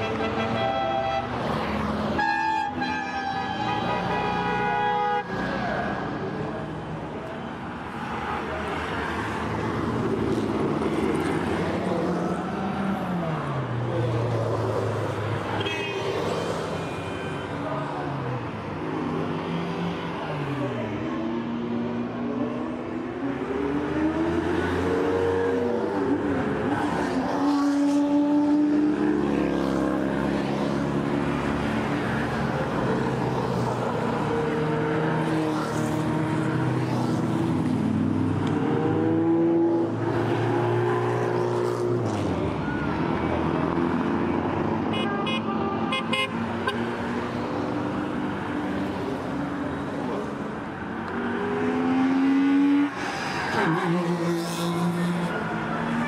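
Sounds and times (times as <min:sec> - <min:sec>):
car engines revving and passing: 0:00.0 - 0:56.0.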